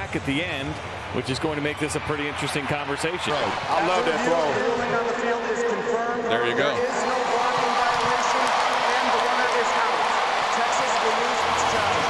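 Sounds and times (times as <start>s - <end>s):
crowd cheering: 0.2s - 5.6s, 6.8s - 12.0s.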